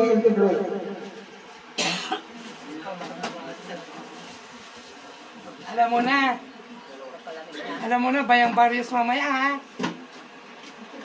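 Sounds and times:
faint murmur of voices: 0.0 - 11.0
sharp cough: 1.8 - 2.3.

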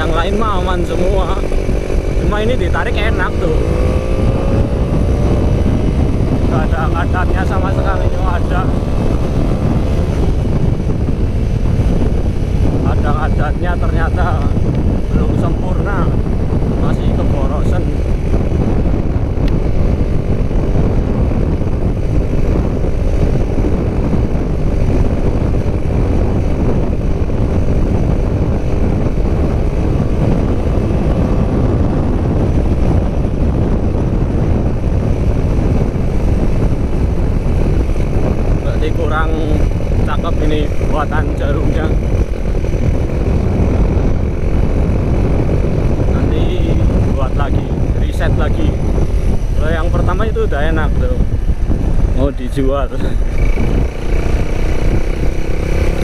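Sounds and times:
motorcycle engine running: 0.0 - 56.0
wind rumble on microphone: 0.0 - 56.0.

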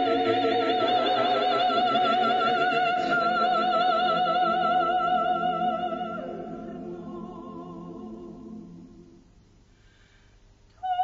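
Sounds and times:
choir singing: 0.0 - 9.2.

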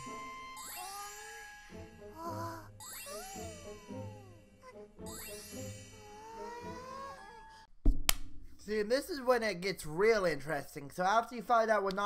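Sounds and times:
sparkling chimes and jingles: 0.0 - 7.2
magical gliding tones: 0.0 - 7.5
light music: 0.0 - 7.7.

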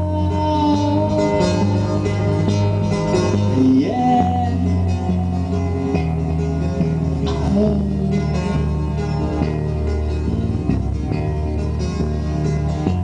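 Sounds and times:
acoustic guitar playing chords: 0.0 - 13.0.

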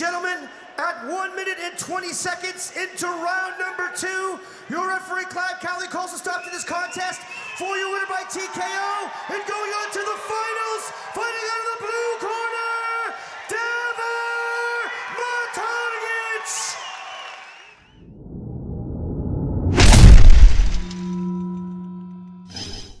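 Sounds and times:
rising whoosh: 18.0 - 21.0
crash with deep boom: 18.2 - 21.2
short hit: 19.6 - 23.0
held tone: 20.0 - 23.0.

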